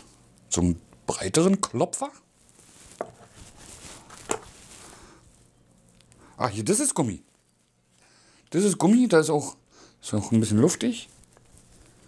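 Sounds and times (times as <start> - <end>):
soft rustling: 2.2 - 8.9, 10.3 - 12.0.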